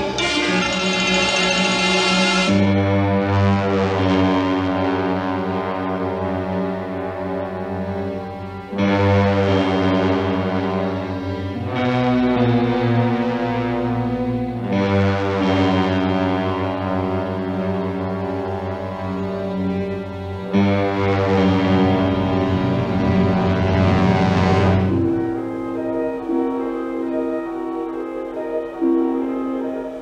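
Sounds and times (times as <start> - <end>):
bright high-pitched orchestral passage: 0.0 - 2.8
low brass chords: 0.0 - 26.6.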